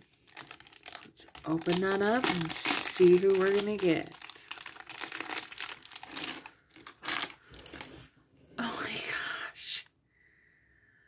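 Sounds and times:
foil wrapper crackling: 0.0 - 7.9.

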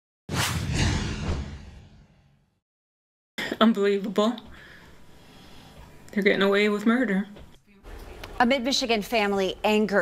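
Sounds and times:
whoosh with low rumble: 0.3 - 2.6.

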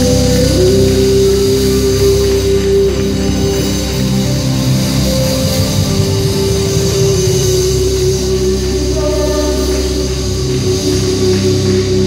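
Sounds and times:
live worship band playing: 0.0 - 12.0.

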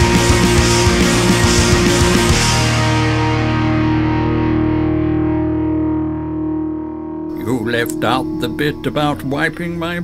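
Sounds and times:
distorted electric guitar chord: 0.0 - 10.0
rock music: 0.0 - 10.0.

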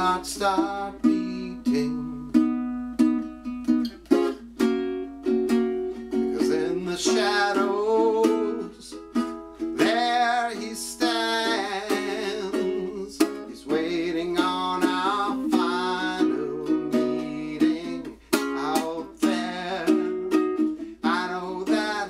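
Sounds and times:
man singing: 0.0 - 2.5, 6.1 - 22.0
ukulele strumming: 0.0 - 22.0.

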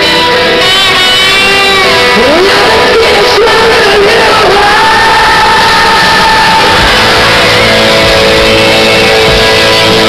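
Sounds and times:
electric guitar chords ringing: 0.0 - 10.0
live rock band playing loud: 0.0 - 10.0.

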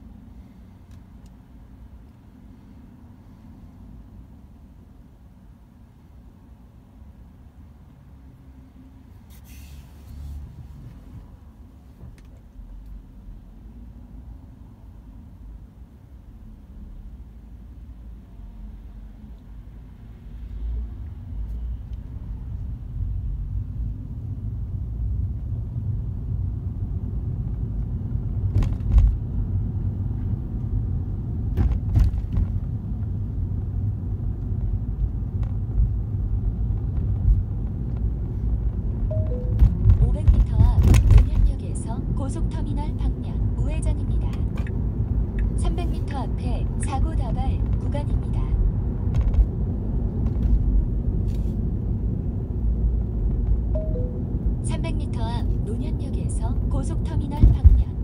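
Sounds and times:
road and tyre rumble in car: 0.0 - 58.0
two-note tone: 39.1 - 39.8, 53.8 - 54.6.

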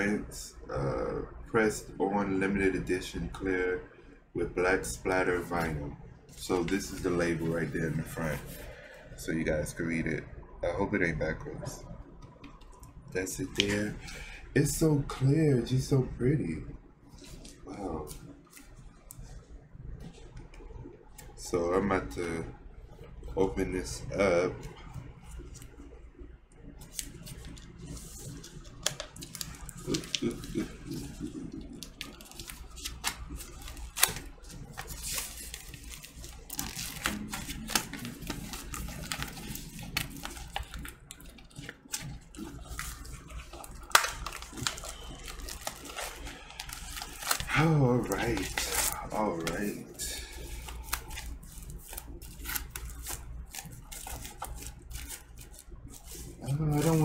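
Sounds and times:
shrink wrap crinkling and tearing: 26.7 - 57.0.

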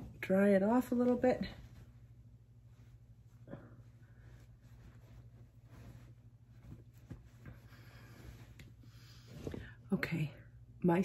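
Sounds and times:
faint low hum: 0.0 - 11.0
towel brushing against face: 1.4 - 9.7.

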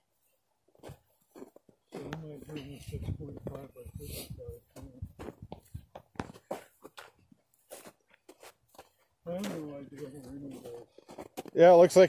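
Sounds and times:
footsteps crunching on snow: 0.1 - 12.0
man talking: 1.9 - 5.3, 9.3 - 10.9, 11.5 - 12.0.

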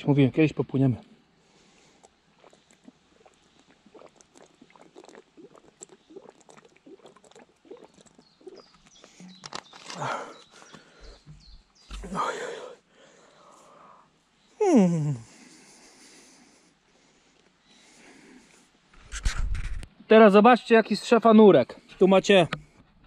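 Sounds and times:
person breathing: 1.4 - 2.1, 9.9 - 11.4, 12.0 - 14.2, 15.1 - 18.7
faint clicks and rustles: 8.0 - 10.0.

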